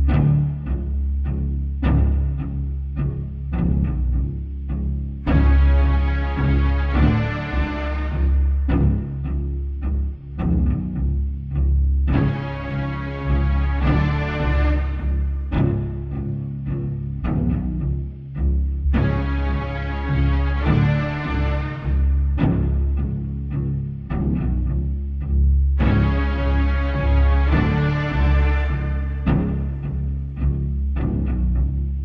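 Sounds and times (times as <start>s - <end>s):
low sustained bass: 0.0s - 32.0s.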